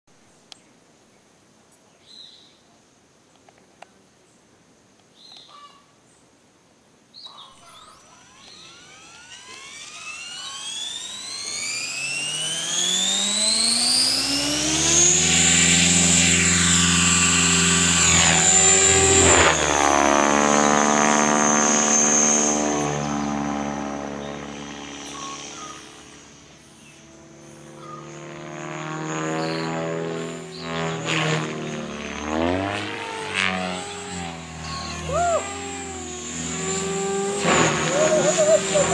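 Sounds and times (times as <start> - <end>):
model helicopter whine: 7.3 - 38.9.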